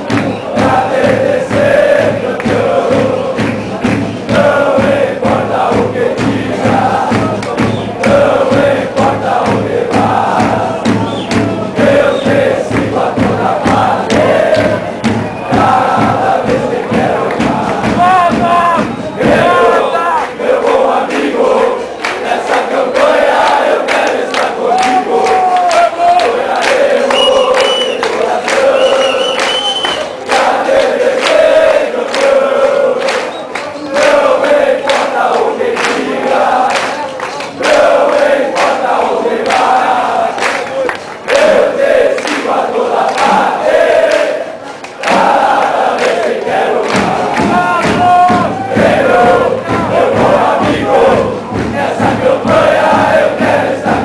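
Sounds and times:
football crowd chanting: 0.0 - 54.0
steady pounding beat: 0.0 - 54.0.

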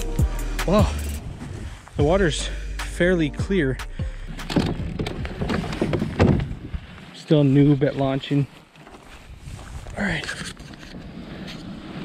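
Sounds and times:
kayak knocks and scrapes: 4.4 - 6.7
rustling on grass: 4.8 - 12.0.

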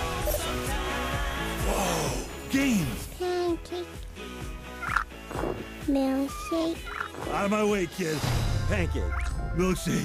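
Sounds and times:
light game music: 1.6 - 10.0
squeaky cartoon animal noises: 4.8 - 7.5.

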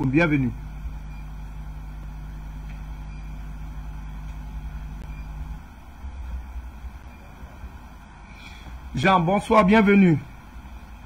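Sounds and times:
steady low tone: 0.0 - 9.4
low hum and rumble: 0.0 - 11.0.

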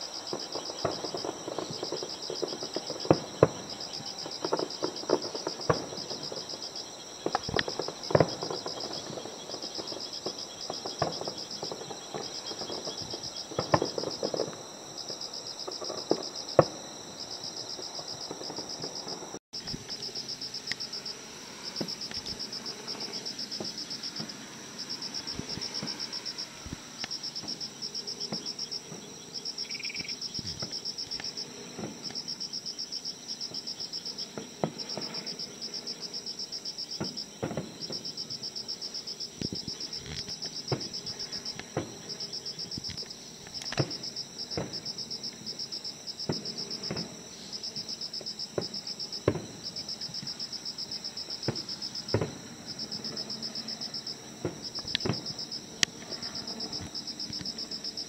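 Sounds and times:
distant fireworks thuds: 0.0 - 20.0, 20.7 - 32.4, 33.4 - 36.0, 37.0 - 38.5, 39.3 - 45.4, 46.2 - 47.2, 48.2 - 50.4, 51.3 - 57.6
crickets chirping: 0.0 - 58.0.

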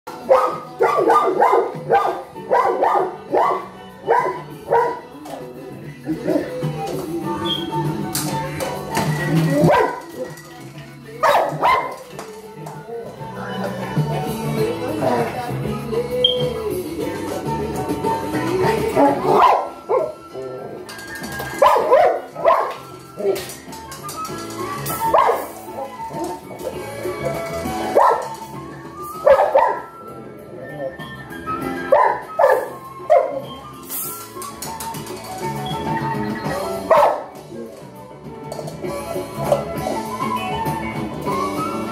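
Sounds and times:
background music: 0.1 - 41.9
dog barking: 0.2 - 5.1, 9.6 - 10.0, 11.2 - 12.0, 19.0 - 20.2, 21.6 - 22.8, 25.0 - 25.6, 28.0 - 28.4, 29.2 - 29.9, 31.9 - 33.4, 36.9 - 37.3.

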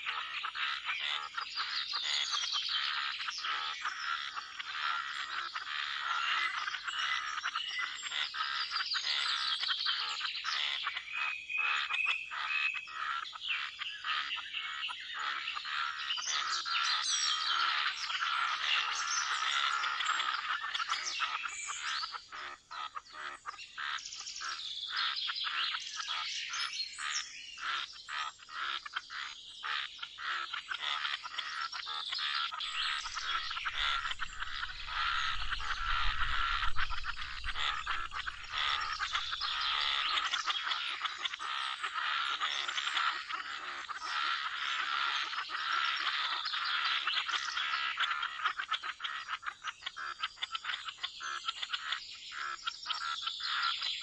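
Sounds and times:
birds chirping: 0.0 - 54.0
chorus of frogs: 0.0 - 54.0
low rumble: 32.7 - 39.8.

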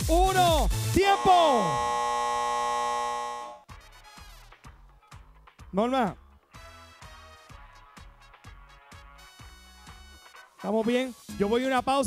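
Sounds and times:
game show buzzer tone: 0.9 - 3.6.

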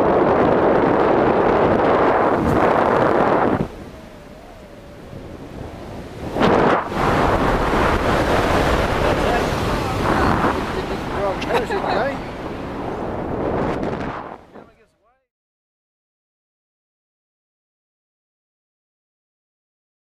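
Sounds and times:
wind buffeting microphone: 0.0 - 14.9.

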